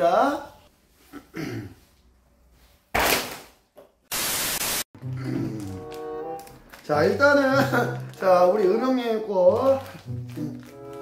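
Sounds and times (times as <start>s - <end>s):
static hiss burst: 4.1s - 4.9s.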